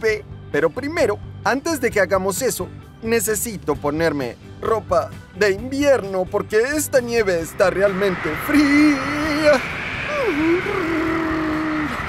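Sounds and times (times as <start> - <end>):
man shivering brrr sound: 10.0 - 12.0.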